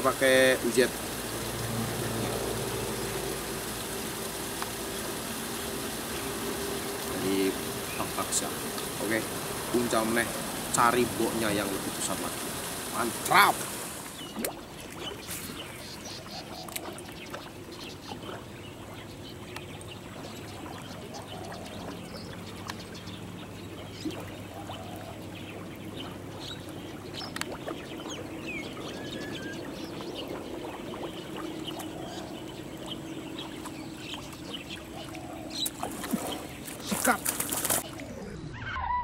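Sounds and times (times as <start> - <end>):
small water splashes: 0.0 - 38.2
trickling water: 0.0 - 38.3
low hum: 0.0 - 39.0.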